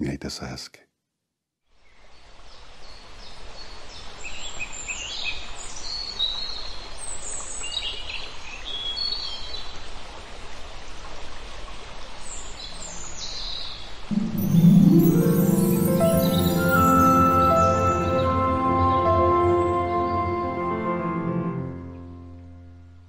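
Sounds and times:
birds chirping and trilling: 14.2 - 20.8.

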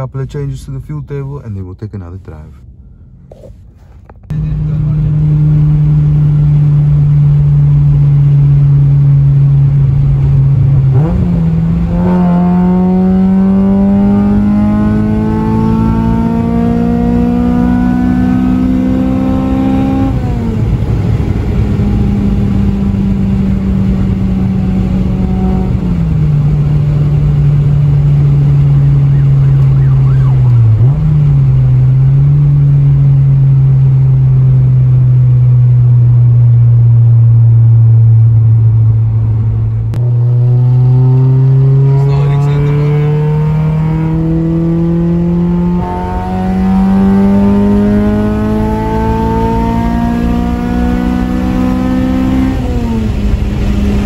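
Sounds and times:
car engine droning: 0.0 - 54.0
road and tyre noise: 0.0 - 54.0.

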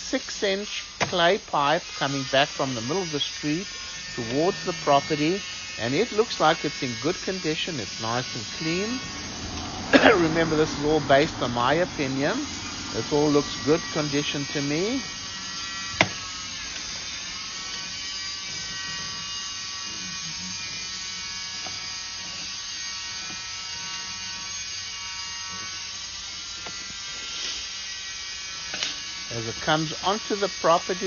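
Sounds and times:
electric buzz with high whine: 0.0 - 31.0.

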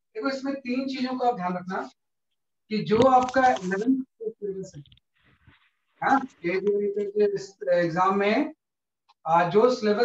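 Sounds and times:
man speaking: 6.0 - 8.6.

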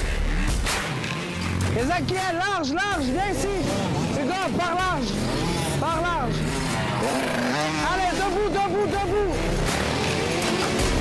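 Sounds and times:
dirt bike engines revving: 0.0 - 11.0.

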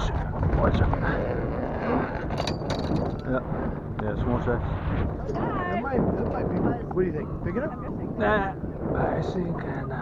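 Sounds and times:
low rumble on a boat: 0.0 - 10.0.

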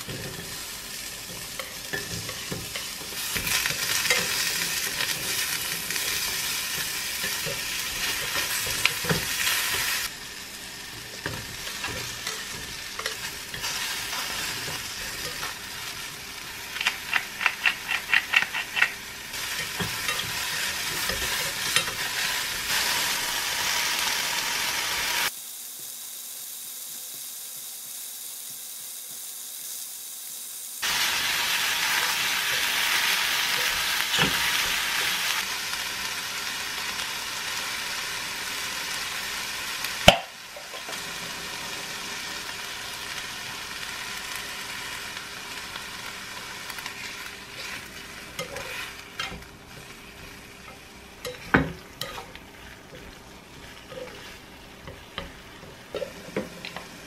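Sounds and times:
chopsticks stirring in a pan: 0.0 - 10.1, 11.0 - 23.0, 45.7 - 57.0
vegetables sizzling in a pan: 0.0 - 57.0.

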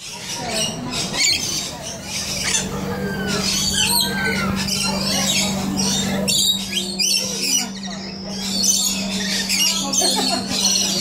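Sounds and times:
parrots screeching and chattering: 0.0 - 11.0
steady low hum: 0.2 - 11.0.

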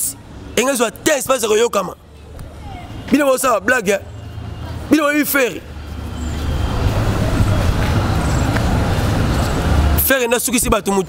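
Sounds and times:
vehicle rumble with road noise: 0.0 - 11.0.

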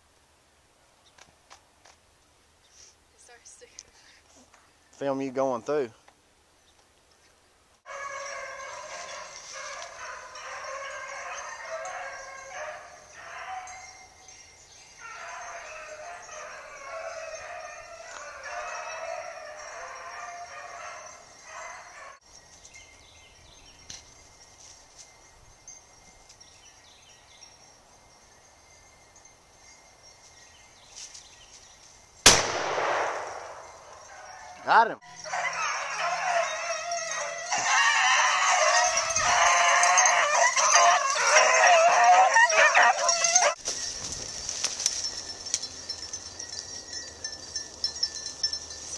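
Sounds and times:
dogs baying: 7.9 - 14.2, 14.9 - 22.2, 33.5 - 43.6
loud shotgun shot: 32.3 - 34.0.

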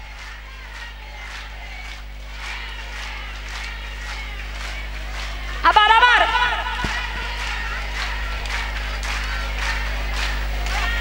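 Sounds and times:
audience clapping in rhythm: 0.0 - 11.0
low electrical hum: 0.0 - 11.0.

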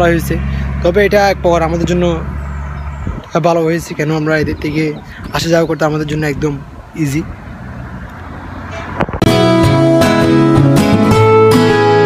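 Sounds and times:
car approaching on road: 0.0 - 12.0.

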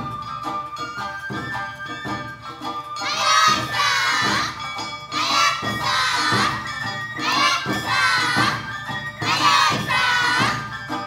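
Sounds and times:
festival drums beating: 0.0 - 11.0
women shouting rhythmic calls: 3.0 - 4.6, 5.2 - 6.6, 7.2 - 8.6, 9.2 - 10.6.

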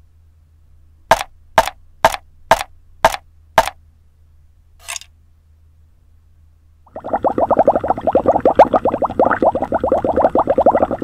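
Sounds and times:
cleaver chopping on wooden board: 1.1 - 3.8.

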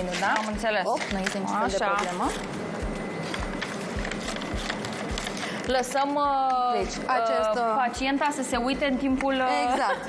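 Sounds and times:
tools and packaging clicking: 0.0 - 2.5
room noise: 0.0 - 10.0.

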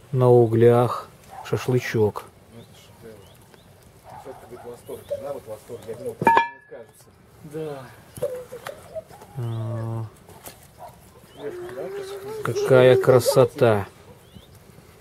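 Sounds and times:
quiet voices talking: 0.1 - 14.5.

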